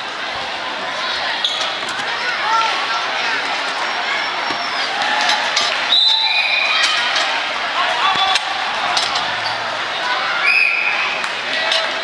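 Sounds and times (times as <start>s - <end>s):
spectators' voices: 0.0s - 12.0s
shoes squeaking on mat: 1.4s - 2.1s, 3.6s - 5.0s.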